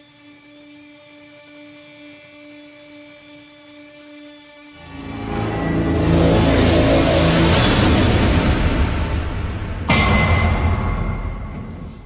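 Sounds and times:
steady electronic hum: 0:00.0 - 0:09.8.

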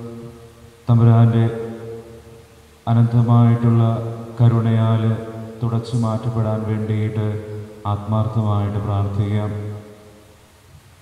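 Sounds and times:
man chanting a prayer: 0:00.0 - 0:02.2, 0:02.8 - 0:10.0.

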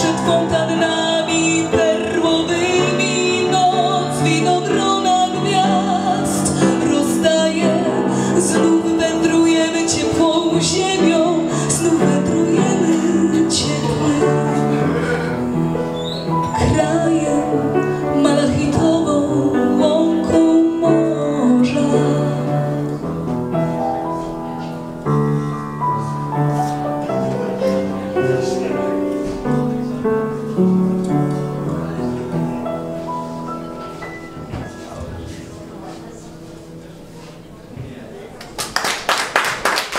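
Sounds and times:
woman singing jazz ballad: 0:00.0 - 0:15.0, 0:16.4 - 0:23.0
piano playing: 0:00.0 - 0:37.7.

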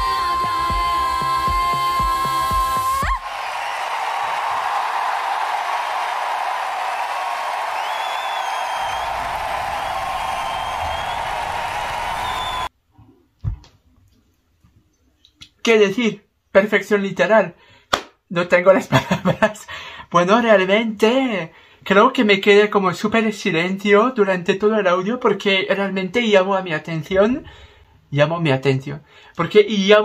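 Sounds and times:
audience cheering and applauding: 0:01.7 - 0:12.7.

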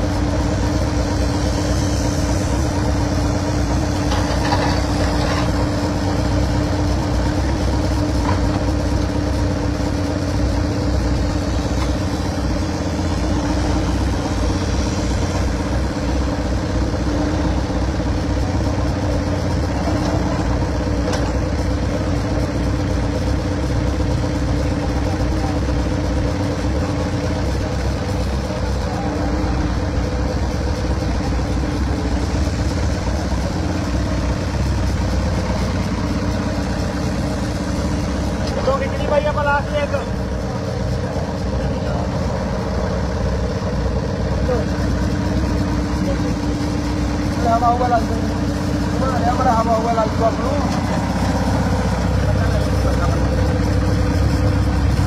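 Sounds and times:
engine running: 0:00.0 - 0:55.0.

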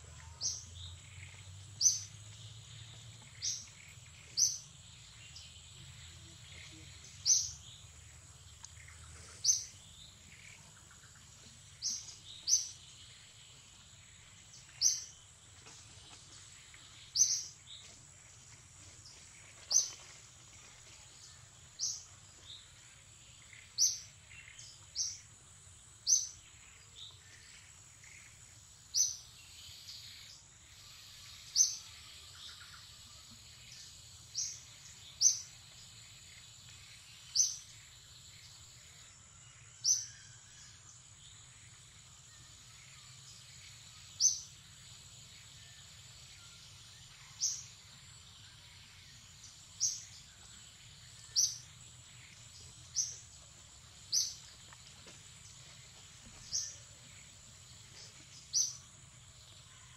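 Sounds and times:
bird chirping: 0:00.0 - 0:15.7, 0:16.3 - 0:20.1, 0:21.0 - 0:59.9
faint insect drone: 0:00.0 - 0:59.9.

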